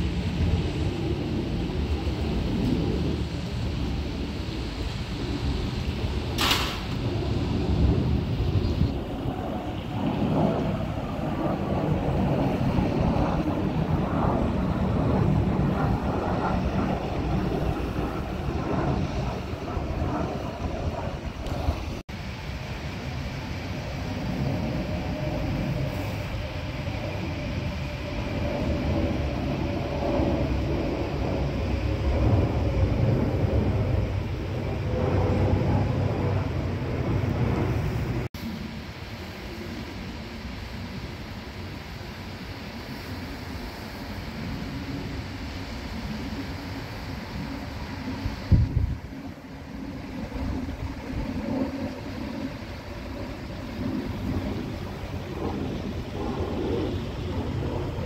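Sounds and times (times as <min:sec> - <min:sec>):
jet engines rumbling overhead: 0:00.0 - 0:58.0.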